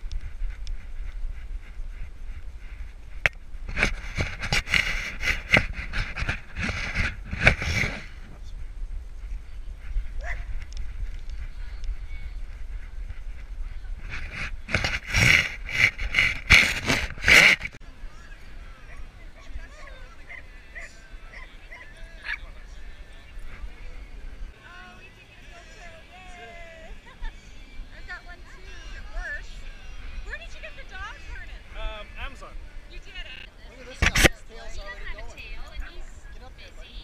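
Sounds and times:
wind rumble: 0.0s - 20.1s
faint background voices: 4.6s - 37.0s
dog barking: 10.2s - 10.5s, 18.9s - 22.5s.

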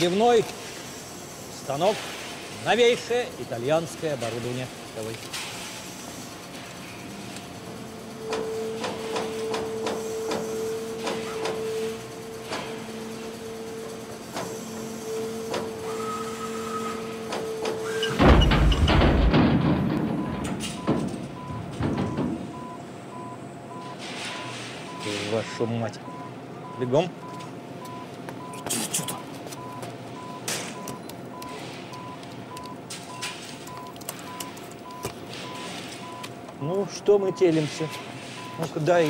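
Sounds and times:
punch press humming: 6.4s - 25.0s
machine crashing and rumbling: 18.1s - 22.5s.

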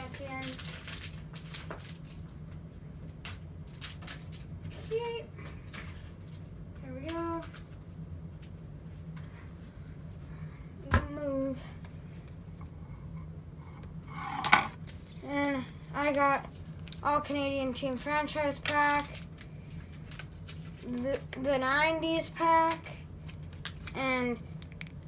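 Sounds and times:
packaging crinkling and clicking: 0.1s - 2.3s, 3.2s - 4.5s, 18.6s - 21.3s, 22.7s - 25.0s.

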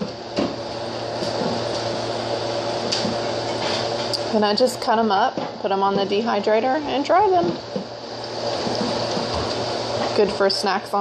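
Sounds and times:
food dehydrator fan whirring: 0.0s - 11.0s.

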